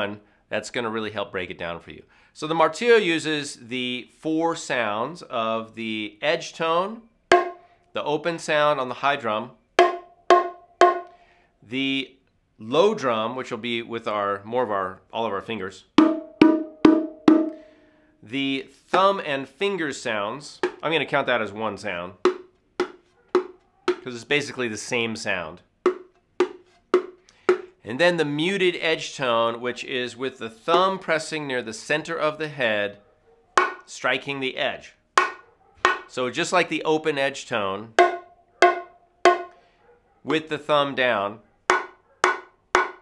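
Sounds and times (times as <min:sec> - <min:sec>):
bongo drum strikes: 0:07.3 - 0:07.6, 0:09.8 - 0:11.1, 0:16.0 - 0:17.7, 0:20.6 - 0:20.8, 0:22.2 - 0:24.0, 0:25.9 - 0:27.7, 0:33.6 - 0:33.8, 0:35.2 - 0:36.1, 0:38.0 - 0:39.5, 0:41.7 - 0:43.0
low bongo drum strokes: 0:07.3 - 0:07.6, 0:09.8 - 0:11.1, 0:16.0 - 0:17.6, 0:38.0 - 0:39.5.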